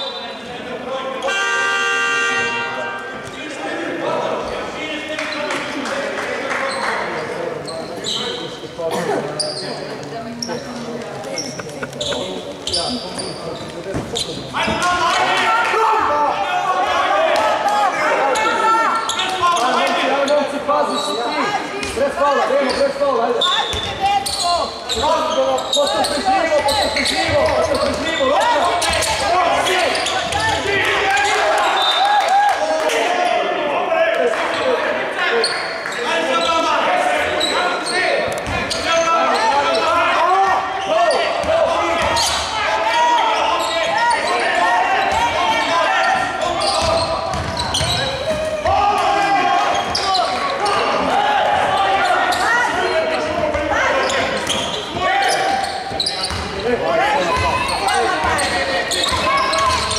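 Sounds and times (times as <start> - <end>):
basketball bouncing on wooden floor: 46.8 - 48.4.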